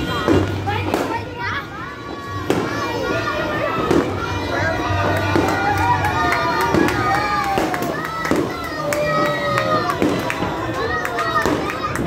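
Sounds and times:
crowd talking and calling out: 0.0 - 12.0
fireworks bangs: 0.0 - 12.0.

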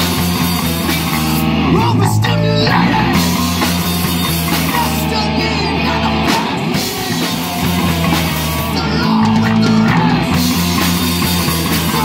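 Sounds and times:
bass guitar: 0.0 - 12.0
distorted electric guitar: 0.0 - 12.0
drums and cymbals: 0.0 - 12.0.

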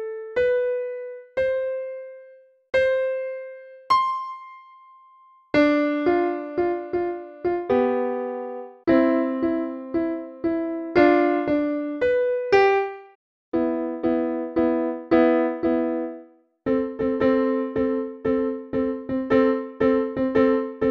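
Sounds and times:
piano playing chords: 0.0 - 20.9.

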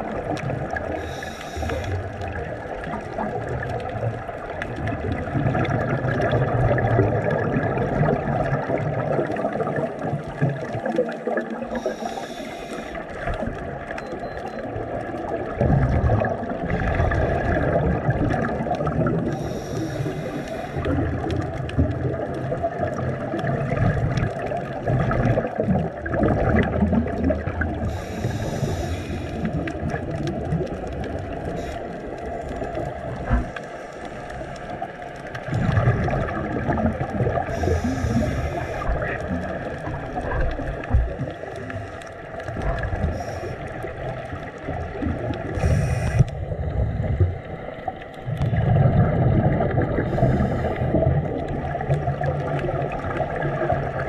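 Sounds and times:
exhaled bubbles gurgling: 0.0 - 54.0
scuba regulator hiss: 1.0 - 2.0, 11.8 - 13.0, 19.3 - 20.9, 27.9 - 29.5, 37.5 - 38.9, 45.6 - 46.3.

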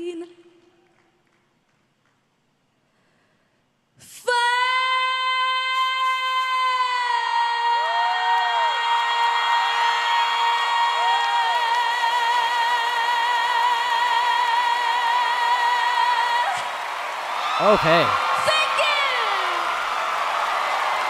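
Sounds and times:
woman singing a long high note: 4.0 - 16.6
crowd cheering: 7.3 - 21.0.

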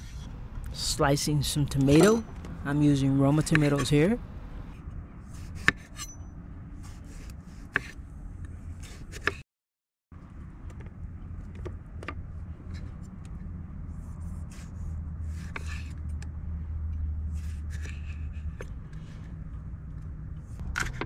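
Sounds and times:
low steady hum: 0.0 - 8.9.

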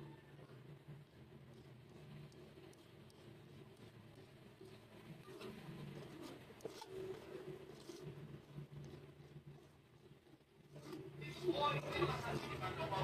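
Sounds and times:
low background hum: 0.0 - 13.0
stew bubbling in pot: 0.1 - 13.0.

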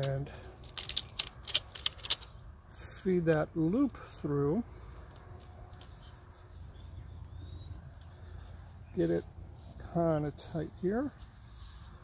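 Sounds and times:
steady low rumble: 0.1 - 12.0.

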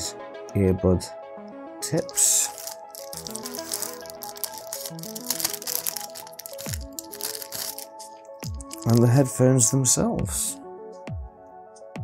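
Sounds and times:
chillstep background music: 0.0 - 12.0
plastic bag crinkling: 2.0 - 9.1.

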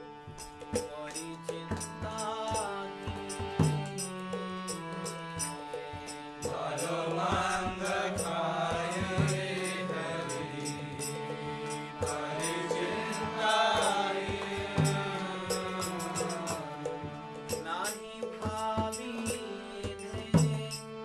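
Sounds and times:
sustained drone accompaniment: 0.0 - 18.0
man singing devotional song: 0.4 - 21.0.

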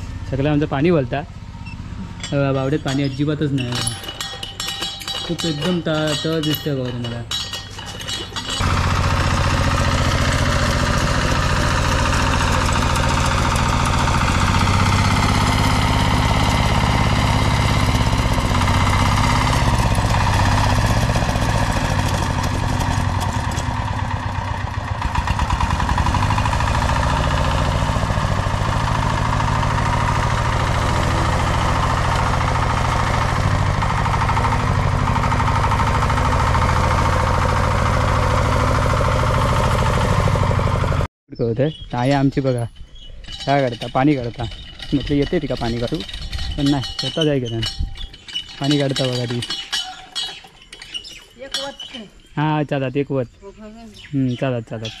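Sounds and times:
tiller diesel engine running: 0.0 - 41.1, 42.2 - 52.3.

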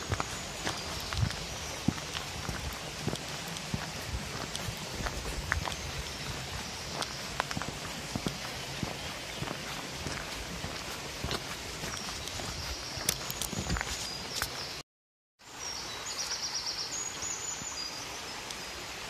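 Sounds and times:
footsteps on muddy dirt track: 0.0 - 14.8.

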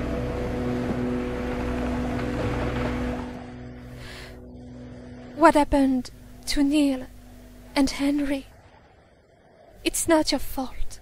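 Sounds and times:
soft background music: 0.0 - 8.7
sea waves: 0.0 - 11.0
wind: 0.0 - 11.0.

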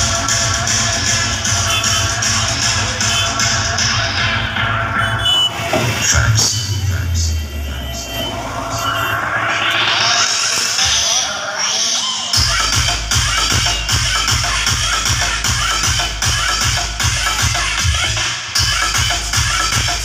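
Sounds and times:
heavy kick drum and bass: 0.0 - 11.3, 12.4 - 20.0
electronic dance music: 0.0 - 20.0.

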